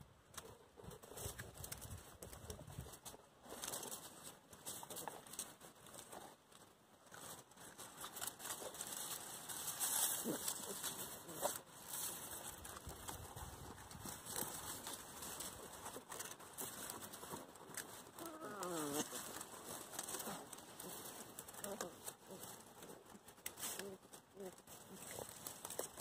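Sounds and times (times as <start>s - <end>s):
puppies rustling on straw: 0.4s - 26.0s
puppy whine: 18.2s - 19.2s.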